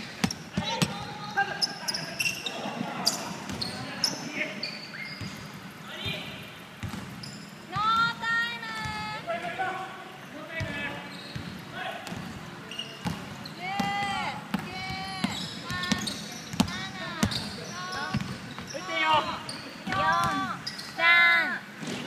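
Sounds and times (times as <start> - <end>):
basketball bouncing: 0.0 - 1.2, 6.8 - 9.2, 10.6 - 12.4, 13.0 - 18.7
shoes squeaking on hardwood: 14.7 - 21.0.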